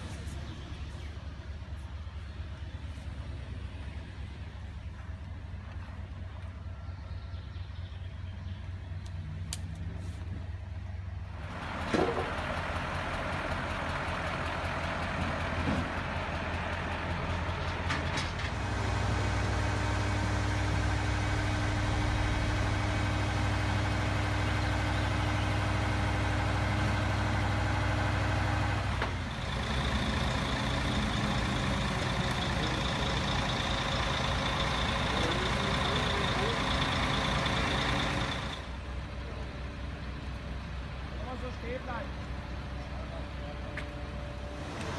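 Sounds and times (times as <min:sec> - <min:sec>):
diesel engine running: 0:00.0 - 0:44.9.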